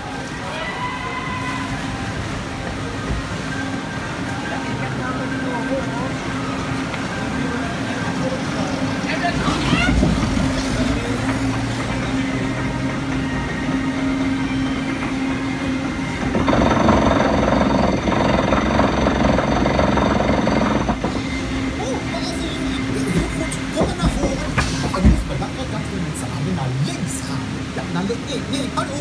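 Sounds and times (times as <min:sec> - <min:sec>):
conveyor lift running and rattling: 0:01.5 - 0:29.0
hum with high steady tones: 0:12.1 - 0:24.5.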